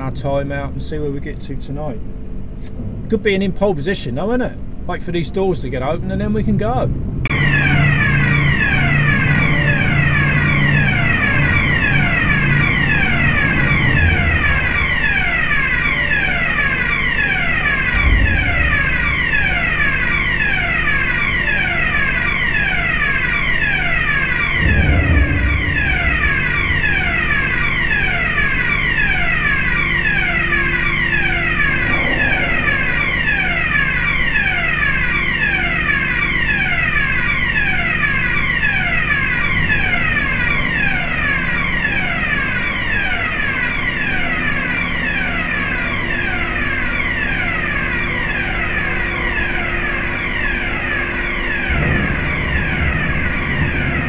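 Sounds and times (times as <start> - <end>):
heavy low rumble: 0.0 - 36.0, 51.6 - 54.0
ship machinery hum: 0.0 - 54.0
warning alarm falling tone: 6.7 - 54.0.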